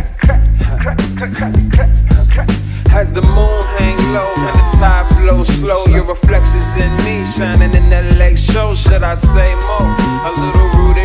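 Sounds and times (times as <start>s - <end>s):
deep bass line: 0.0s - 11.0s
rapping over a beat: 0.0s - 11.0s.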